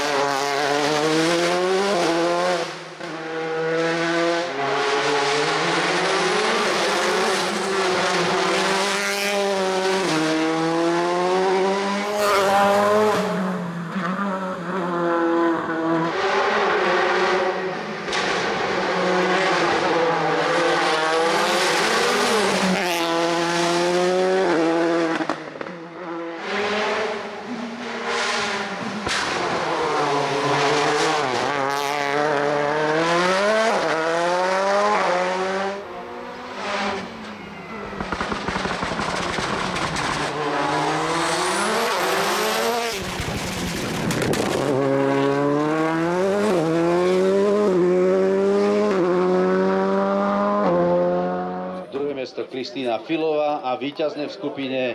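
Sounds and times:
rally car engine revving: 0.0s - 52.0s.

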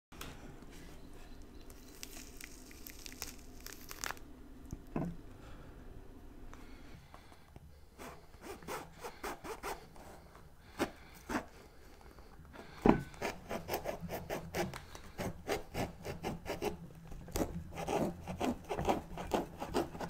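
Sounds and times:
knife cutting through fruit peel: 13.0s - 20.0s.

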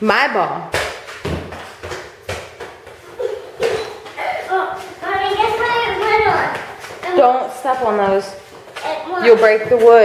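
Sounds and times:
thumps on concrete floor: 0.6s - 3.0s, 3.6s - 4.2s.

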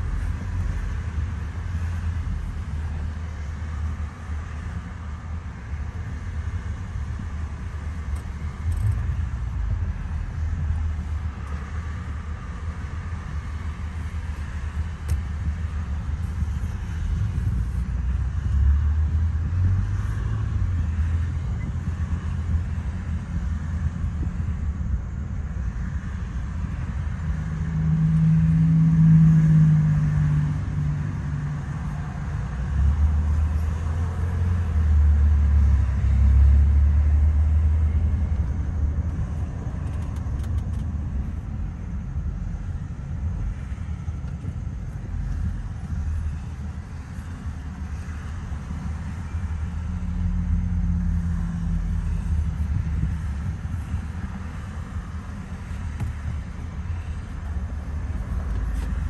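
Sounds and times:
road and engine rumble in car: 0.0s - 59.0s.

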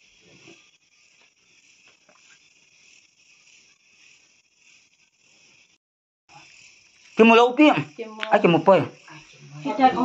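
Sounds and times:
faint high-pitched hiss: 0.0s - 10.0s.

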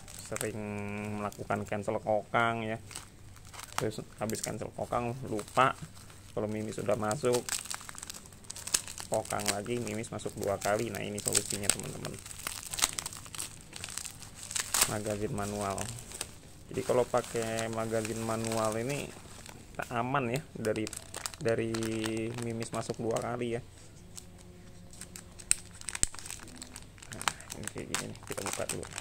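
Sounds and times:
bubble wrap crinkling: 0.0s - 29.0s.

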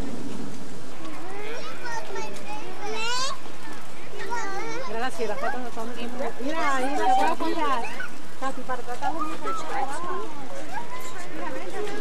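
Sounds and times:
children chattering and calling out: 0.9s - 12.0s
child shouting: 1.3s - 3.4s.

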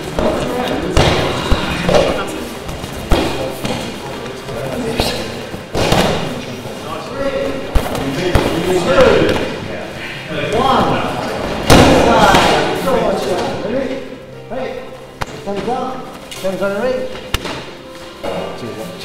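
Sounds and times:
indistinct voices in hall: 0.0s - 19.0s.

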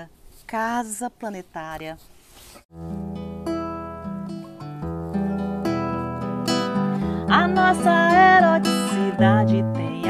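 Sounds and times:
acoustic guitar chords: 2.7s - 10.0s.

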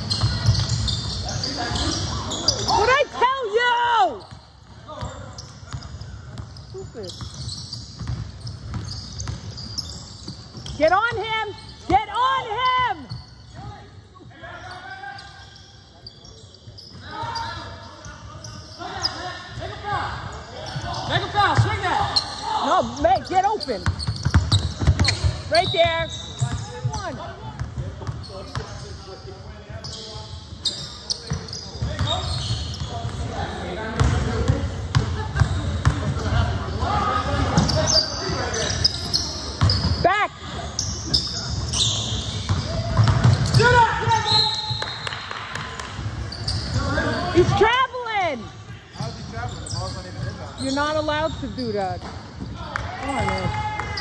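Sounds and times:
players calling out: 0.0s - 28.9s
sneakers squeaking on floor: 0.0s - 54.0s
basketball bouncing: 5.7s - 9.6s, 23.8s - 28.7s, 31.3s - 32.1s, 42.4s - 43.8s.

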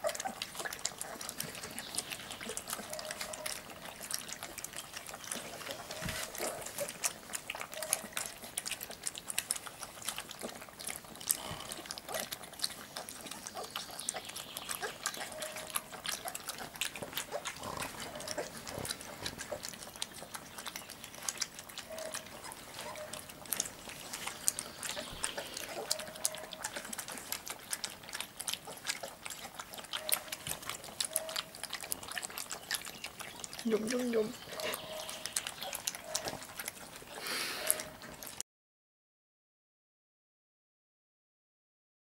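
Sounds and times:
puppies lapping and slurping: 0.0s - 38.4s.

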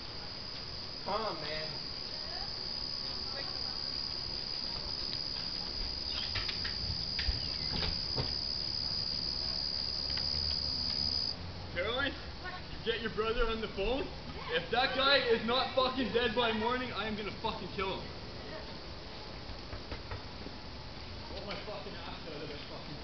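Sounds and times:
crickets trilling: 0.0s - 19.0s.

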